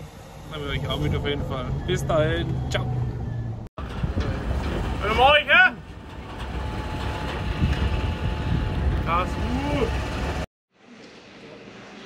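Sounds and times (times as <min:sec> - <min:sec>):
vehicle rumble: 0:00.0 - 0:10.5
wind on microphone: 0:06.8 - 0:10.4.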